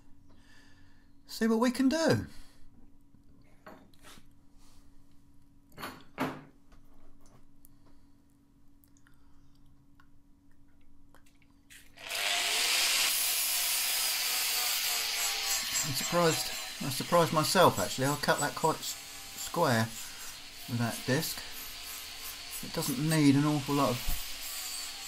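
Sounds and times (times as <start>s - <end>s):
angle grinder grinding steel: 12.0s - 25.0s.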